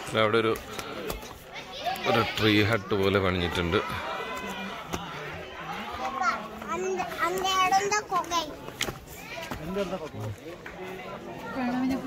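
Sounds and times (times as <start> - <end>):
children talking: 0.0 - 12.0.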